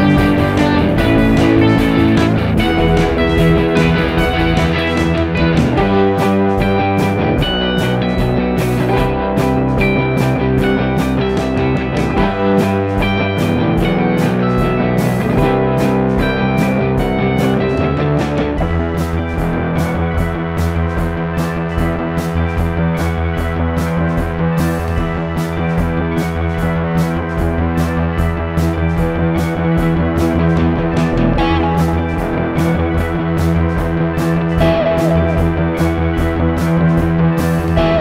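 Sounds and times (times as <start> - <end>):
rock music: 0.0 - 38.0.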